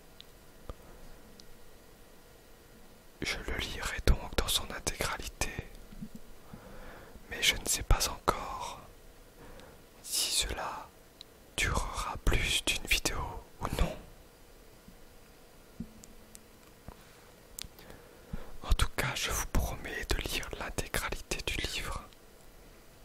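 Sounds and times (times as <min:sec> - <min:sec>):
person whispering: 0:03.2 - 0:05.8, 0:07.3 - 0:08.9, 0:10.0 - 0:10.9, 0:11.6 - 0:14.1, 0:18.6 - 0:22.1.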